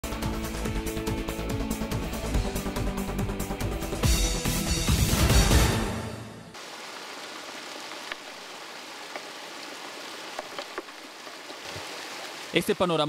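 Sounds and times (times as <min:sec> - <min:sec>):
theme music: 0:00.0 - 0:06.6
runoff water rushing: 0:04.9 - 0:13.0.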